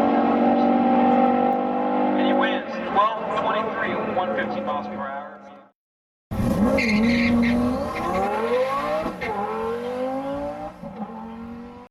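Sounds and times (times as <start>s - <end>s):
car engine accelerating: 0.0s - 2.9s, 6.3s - 11.9s.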